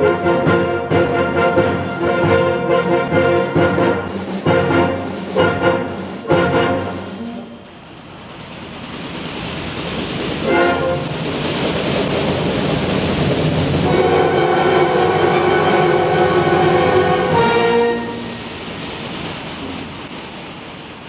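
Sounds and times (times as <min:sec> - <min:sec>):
concert band sustained chords: 0:00.0 - 0:07.7, 0:13.8 - 0:18.5.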